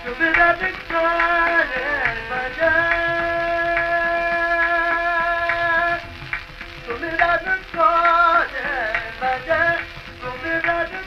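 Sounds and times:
man singing classical vocals: 0:00.0 - 0:06.2, 0:06.8 - 0:11.0.

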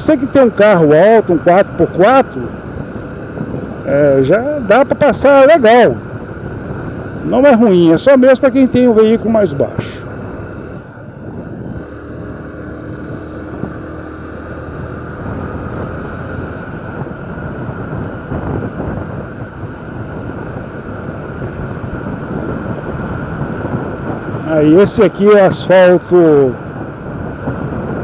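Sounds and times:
motorcycle engine running: 0:00.0 - 0:28.0
wind rush on microphone: 0:00.0 - 0:28.0.

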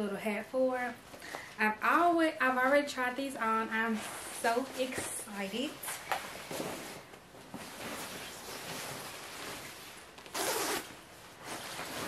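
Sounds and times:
nylon fabric rustling: 0:02.0 - 0:12.0
fabric or zipper rasp: 0:10.3 - 0:12.0.

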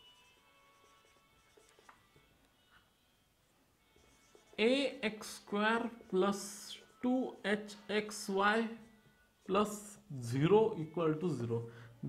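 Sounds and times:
marker pen on whiteboard: 0:00.0 - 0:03.0, 0:03.8 - 0:11.4.

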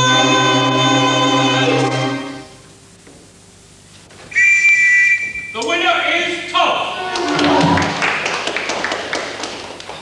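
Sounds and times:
high-pitched whistle blast: 0:04.3 - 0:05.6.

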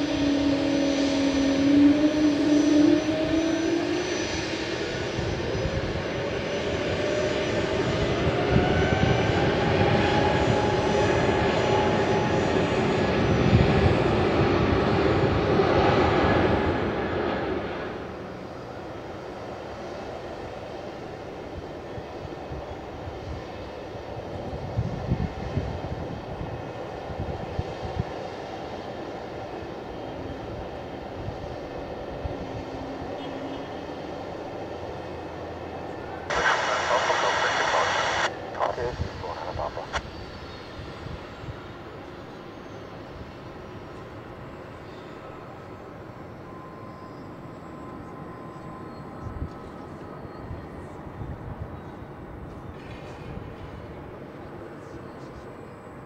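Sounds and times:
aircraft engines whining: 0:00.0 - 0:22.3, 0:34.0 - 0:43.8.

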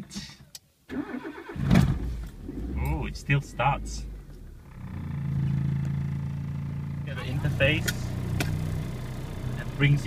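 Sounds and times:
car engine idling: 0:01.8 - 0:10.0.

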